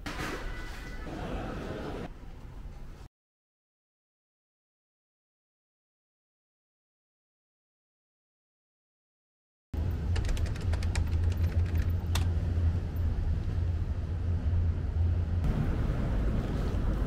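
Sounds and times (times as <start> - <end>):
traffic rumble: 9.8 - 17.0.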